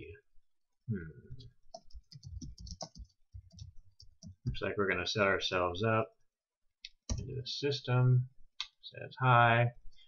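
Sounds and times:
typing on keyboard: 0:01.7 - 0:04.6.

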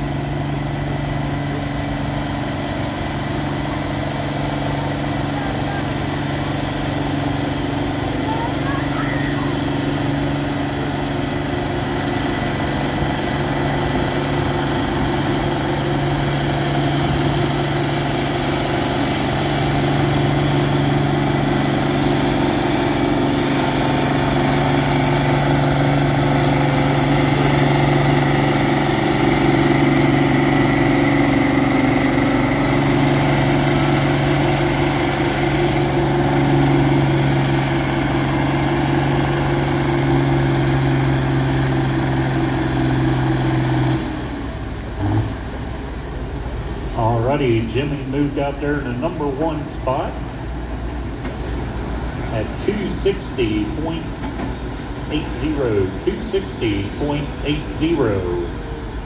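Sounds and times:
tractor engine under full load: 0:00.0 - 0:59.0.

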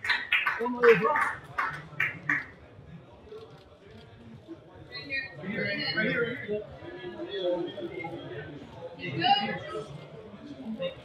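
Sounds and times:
faint room chatter: 0:00.0 - 0:11.0.

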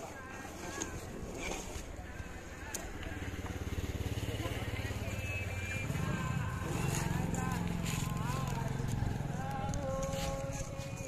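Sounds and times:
vehicle engine running: 0:02.1 - 0:11.0.

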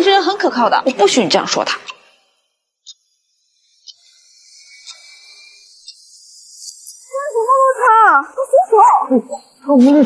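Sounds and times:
clock-like ticking: 0:03.8 - 0:04.1.

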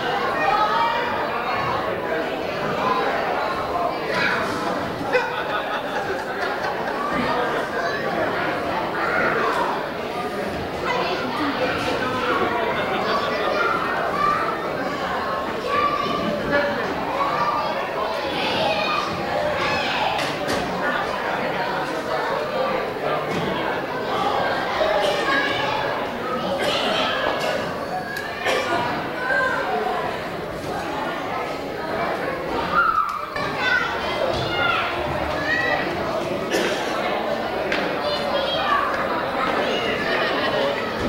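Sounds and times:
children's voices: 0:00.0 - 0:41.0
crowd chattering and calling out: 0:00.0 - 0:41.0.

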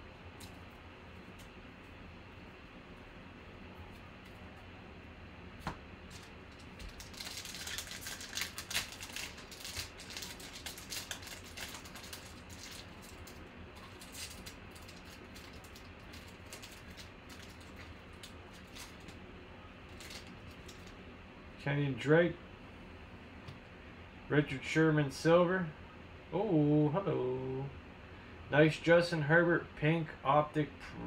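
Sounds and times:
cards rustling: 0:06.1 - 0:19.2, 0:19.9 - 0:21.0
foil wrapper crinkling: 0:06.1 - 0:19.2, 0:19.8 - 0:21.0.

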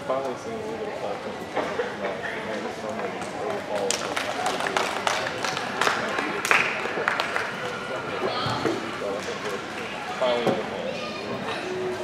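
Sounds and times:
echoing chatter of many voices: 0:00.0 - 0:12.0.

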